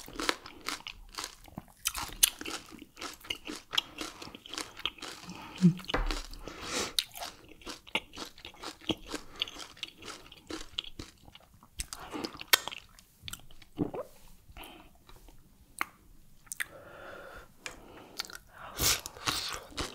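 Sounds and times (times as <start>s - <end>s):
person chewing food: 0.0s - 16.8s, 17.6s - 19.9s.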